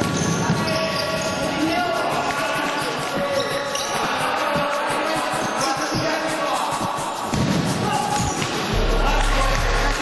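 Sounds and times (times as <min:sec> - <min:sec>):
sneakers squeaking on floor: 0:00.0 - 0:08.7
footsteps: 0:00.0 - 0:10.0.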